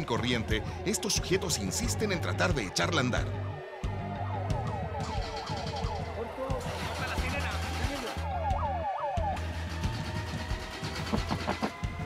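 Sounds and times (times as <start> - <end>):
background music: 0.0 - 12.0
electronic yelping siren: 2.7 - 12.0.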